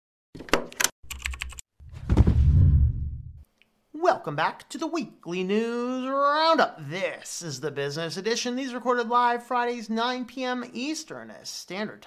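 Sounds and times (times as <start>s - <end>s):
keyboard typing clicks: 0.7s - 1.6s
low thump: 1.9s - 3.4s.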